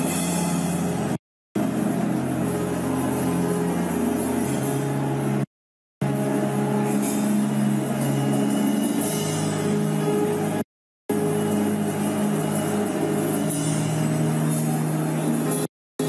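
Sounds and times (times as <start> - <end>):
church keyboard chords: 0.0 - 15.7.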